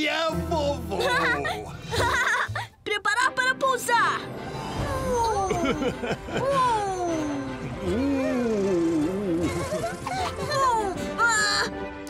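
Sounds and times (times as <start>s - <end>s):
light background music: 0.0s - 12.0s
cartoon characters laughing: 0.9s - 2.7s, 5.3s - 7.0s, 9.2s - 11.7s.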